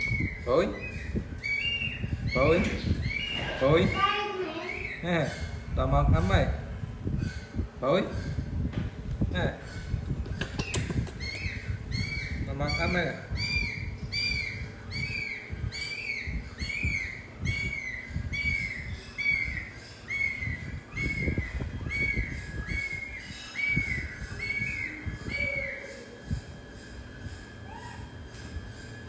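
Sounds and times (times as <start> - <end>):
high arched chirping call: 10.6 - 26.4.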